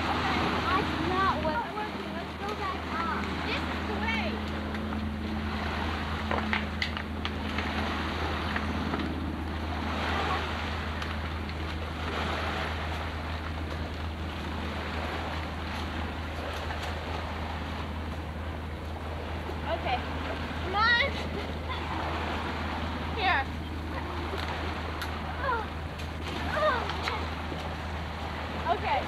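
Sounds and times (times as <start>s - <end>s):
low steady hum: 0.0s - 29.0s
steady outdoor rushing noise: 0.0s - 29.0s.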